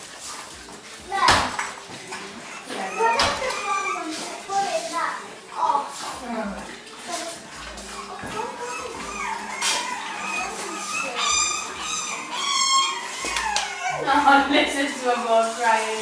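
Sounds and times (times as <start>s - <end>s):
voices: 1.1s - 16.0s
puppies crying: 1.3s - 16.0s.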